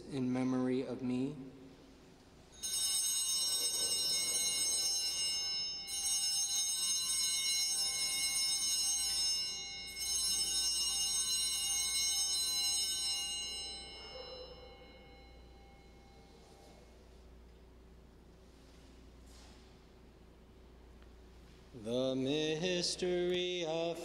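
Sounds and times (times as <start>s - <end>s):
small altar bells ringing: 2.0s - 17.5s.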